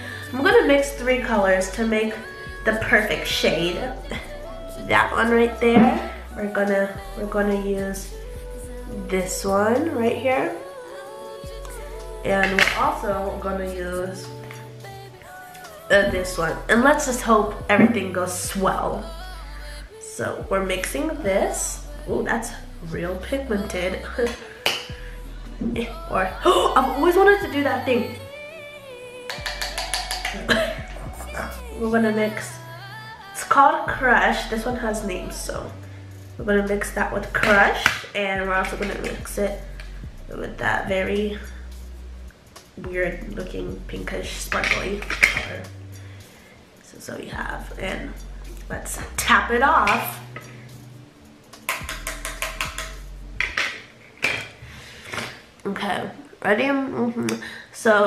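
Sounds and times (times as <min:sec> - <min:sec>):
faint music: 0:00.0 - 0:58.0
brush tapping on palette: 0:29.3 - 0:30.5, 0:51.6 - 0:53.7
person laughing: 0:30.3 - 0:31.0.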